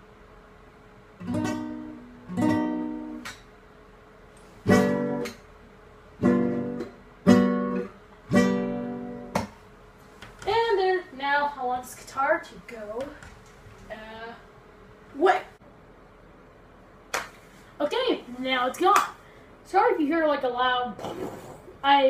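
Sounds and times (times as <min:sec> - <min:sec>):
acoustic guitar chords strummed: 0:01.2 - 0:03.5, 0:04.5 - 0:09.6.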